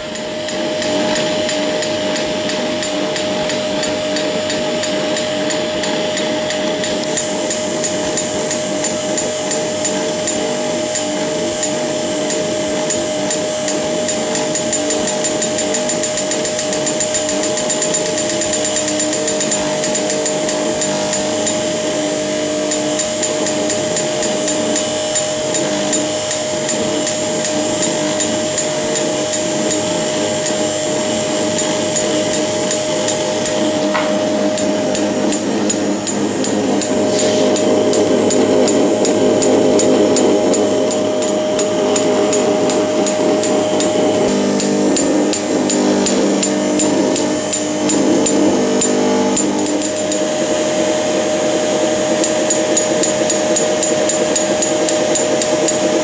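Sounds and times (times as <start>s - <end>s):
equipment hum: 0.0s - 56.0s.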